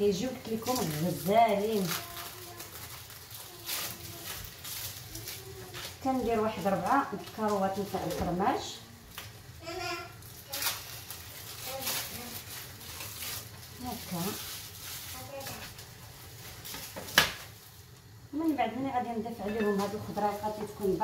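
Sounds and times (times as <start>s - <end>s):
cheese wrapper unwrapping: 0.0s - 8.2s, 9.0s - 18.2s
faint sizzling in frying pan: 0.0s - 21.0s
spoon scraping and knocking bowl: 19.4s - 20.8s.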